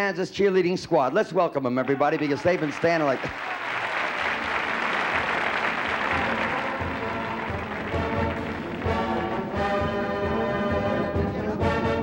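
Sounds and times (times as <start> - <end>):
audience applauding: 1.8 - 10.0
band music with horns: 4.2 - 12.0.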